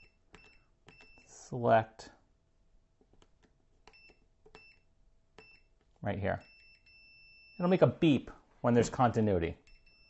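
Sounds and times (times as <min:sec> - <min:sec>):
multimeter high beeps: 0:03.9 - 0:05.7, 0:06.4 - 0:07.8, 0:09.6 - 0:10.0.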